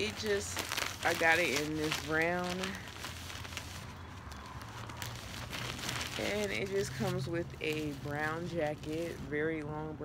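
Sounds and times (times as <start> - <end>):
fabric rustling and crinkling: 0.0 - 10.0.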